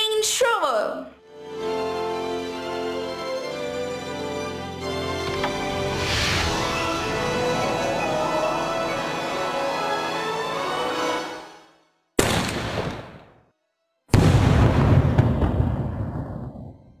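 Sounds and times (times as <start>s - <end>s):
background music: 0.0s - 12.0s
firework burst boom: 14.1s - 16.9s.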